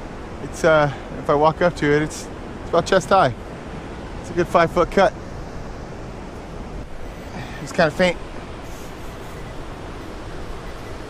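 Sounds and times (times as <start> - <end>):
ocean surf: 0.0 - 11.0
wind: 0.0 - 11.0.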